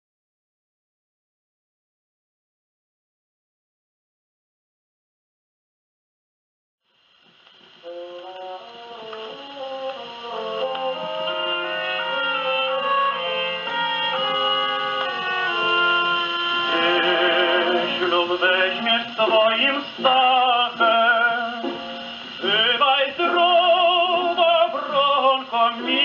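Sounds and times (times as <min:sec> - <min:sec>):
orchestra on old record: 0:07.1 - 0:26.0.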